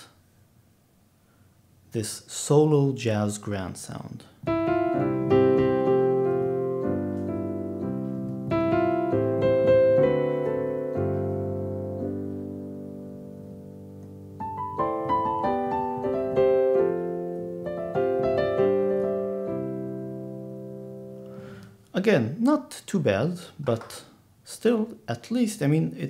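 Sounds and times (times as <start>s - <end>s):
piano chords: 4.4s - 21.8s.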